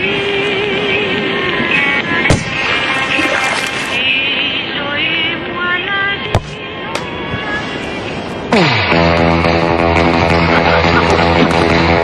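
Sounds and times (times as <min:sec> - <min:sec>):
background voices: 0:00.0 - 0:06.4
football struck hard: 0:02.3 - 0:02.6.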